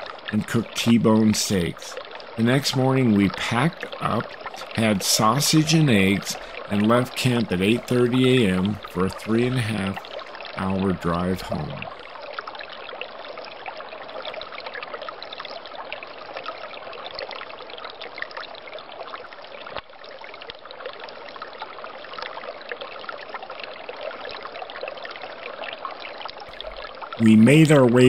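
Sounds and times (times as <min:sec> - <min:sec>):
stream trickling under ice: 0:00.0 - 0:28.0.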